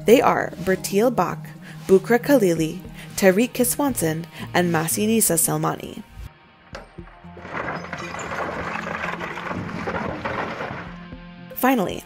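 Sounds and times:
heavy knocks of rock: 0:06.7 - 0:11.2
rock crashing and tumbling: 0:06.7 - 0:11.2.

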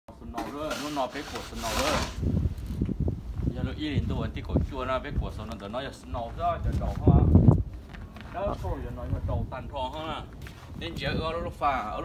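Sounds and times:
snow shovel scraping through snow: 0:00.4 - 0:02.3.

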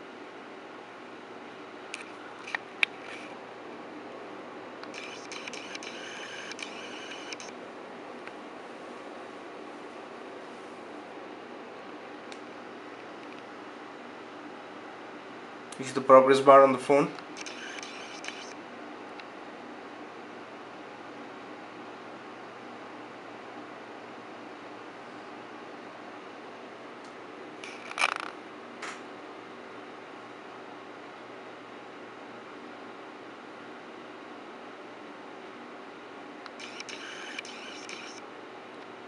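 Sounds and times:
low background hum: 0:00.0 - 0:39.0.

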